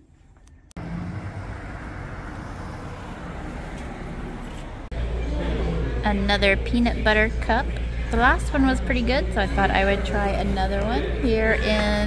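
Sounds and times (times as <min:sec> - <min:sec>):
road traffic: 0:00.4 - 0:05.2.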